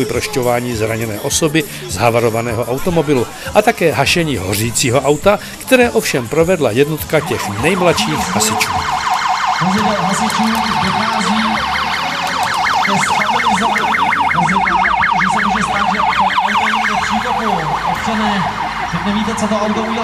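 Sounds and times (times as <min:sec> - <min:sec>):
fire engine siren yelping: 0:06.9 - 0:20.0.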